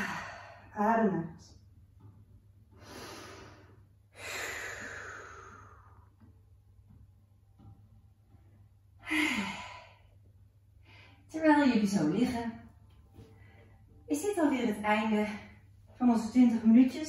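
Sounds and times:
woman exhaling: 0:02.8 - 0:06.1.

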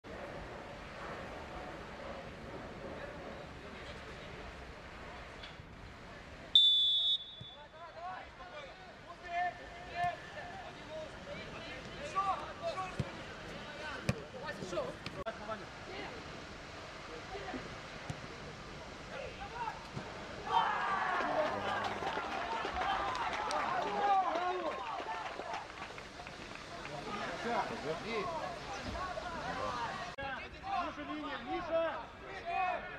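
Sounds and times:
referee's whistle blast: 0:06.6 - 0:07.7
players shouting: 0:19.1 - 0:32.9.

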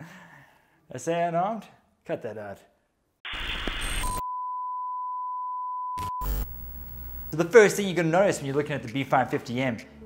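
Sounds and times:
static burst: 0:03.3 - 0:04.2, 0:06.0 - 0:07.4
steady test-tone beep: 0:03.9 - 0:07.4.

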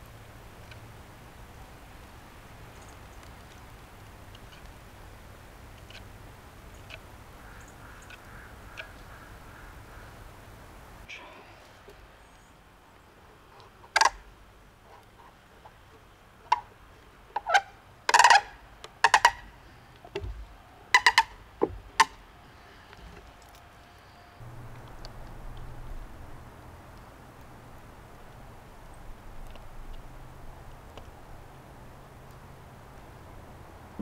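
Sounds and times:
faint hiss: 0:00.0 - 0:13.8
wooden parts knocking: 0:17.4 - 0:19.4, 0:20.1 - 0:22.2
steady low hum: 0:19.4 - 0:34.0.

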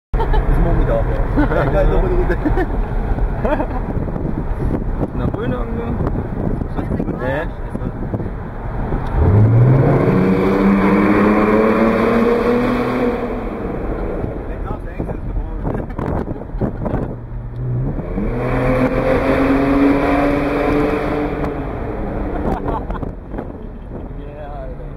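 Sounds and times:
car engine accelerating in tunnel: 0:08.2 - 0:14.7, 0:17.0 - 0:24.0.

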